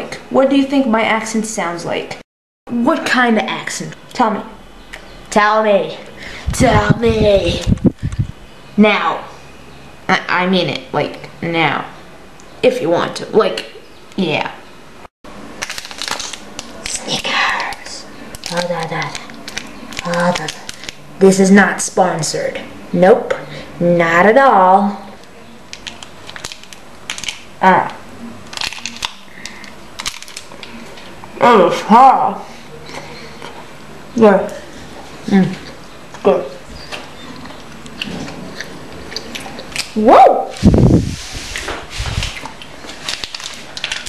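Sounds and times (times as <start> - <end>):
plastic wrapper crinkling: 15.4 - 21.0, 25.7 - 27.5, 28.4 - 31.2, 42.0 - 44.0
person chewing hard food: 36.8 - 40.0.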